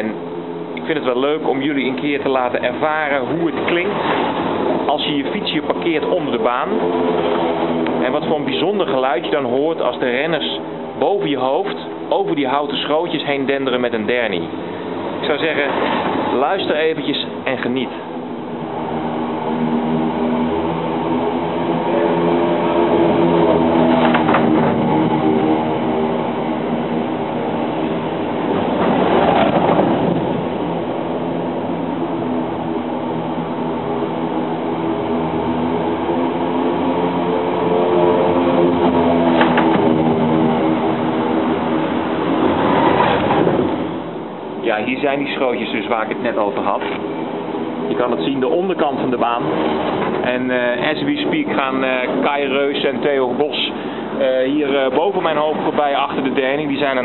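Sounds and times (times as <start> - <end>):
motorbike and bikes rumbling over boards: 0.6 - 44.5, 45.2 - 57.0.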